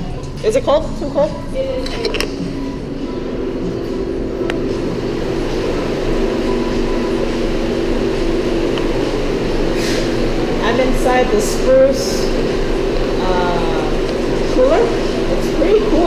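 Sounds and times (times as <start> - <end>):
refrigeration unit hum: 0.0 - 16.0.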